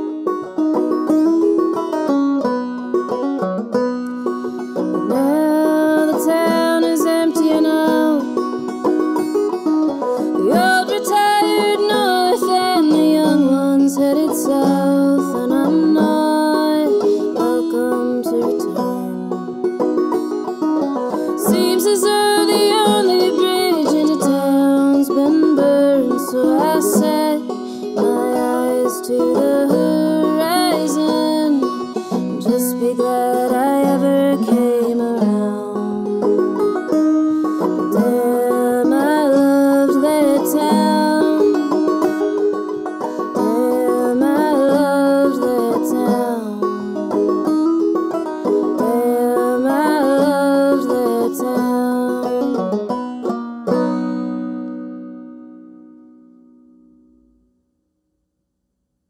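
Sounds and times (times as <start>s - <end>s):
banjo playing: 0.0s - 57.4s.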